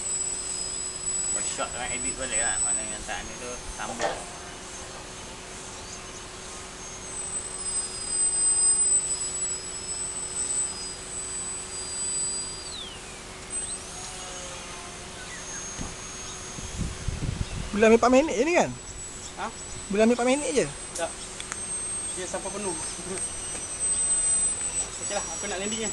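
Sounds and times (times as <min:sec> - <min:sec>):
distant model plane motor whine: 0:00.0 - 0:25.9.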